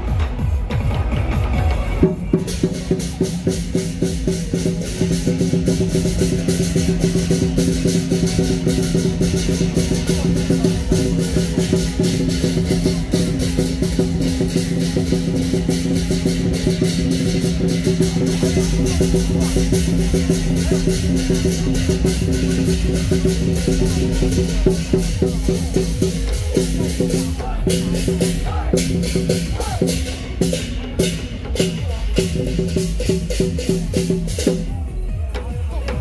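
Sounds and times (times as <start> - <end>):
large drum beating: 0.0 - 36.0
cymbals and gong struck: 2.1 - 34.7.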